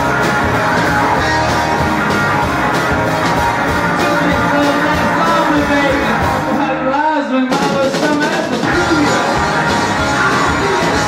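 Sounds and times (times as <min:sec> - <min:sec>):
bass guitar: 0:00.0 - 0:11.0
drum kit: 0:00.0 - 0:11.0
electric guitar: 0:00.0 - 0:11.0.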